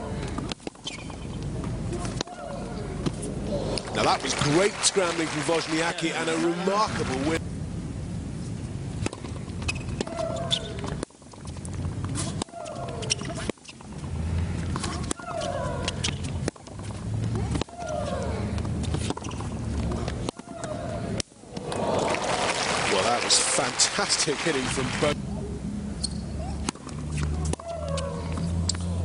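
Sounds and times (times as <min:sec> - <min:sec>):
crowd applauding: 0:03.8 - 0:07.4, 0:21.6 - 0:25.2.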